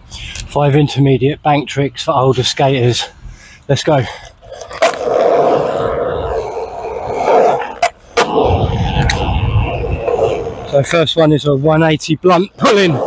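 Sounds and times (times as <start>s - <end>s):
skateboard wheels rolling on concrete: 4.0s - 13.0s.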